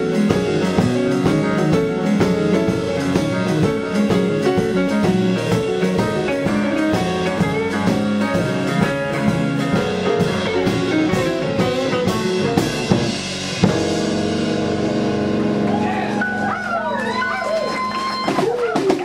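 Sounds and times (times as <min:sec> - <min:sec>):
drum hits: 0:00.0 - 0:16.5
electric bass: 0:00.0 - 0:18.4
electric guitar: 0:00.0 - 0:18.9.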